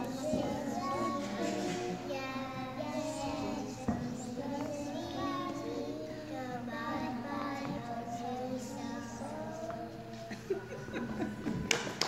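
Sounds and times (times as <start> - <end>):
children singing together: 0.0 - 11.8.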